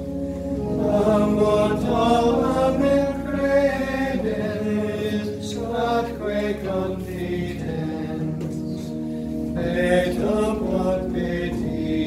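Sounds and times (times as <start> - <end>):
held low drone notes: 0.0 - 12.0
voices singing a chant: 0.4 - 12.0.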